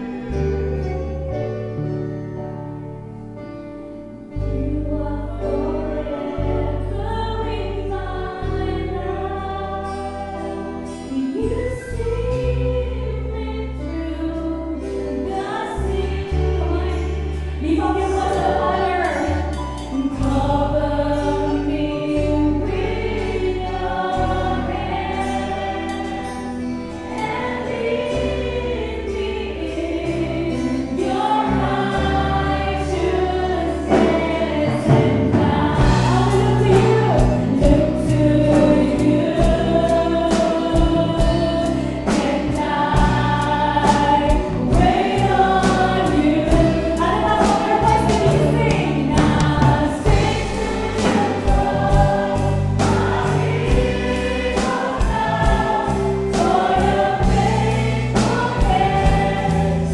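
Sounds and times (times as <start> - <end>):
woman singing lead: 4.2 - 59.9
backing singers: 4.4 - 59.9
band playing: 22.6 - 59.9
drums steady beat: 33.9 - 38.0, 42.1 - 59.9.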